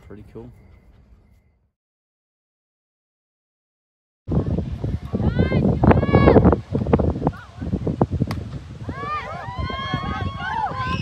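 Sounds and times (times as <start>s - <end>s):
wind buffeting microphone: 4.3s - 11.0s
people shouting and cheering: 5.0s - 6.4s, 8.8s - 11.0s.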